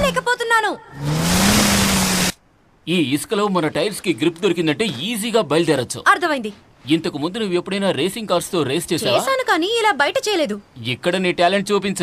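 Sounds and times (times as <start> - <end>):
race car engine revving: 1.0 - 2.4.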